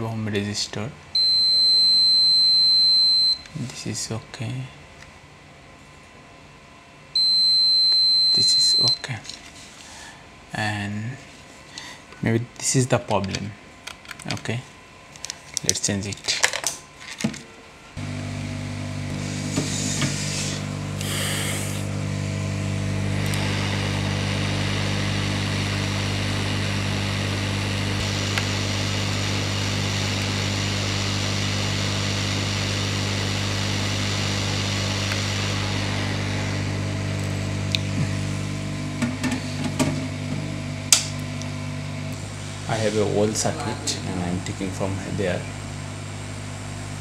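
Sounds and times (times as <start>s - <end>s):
hot air station blowing: 18.0s - 47.0s.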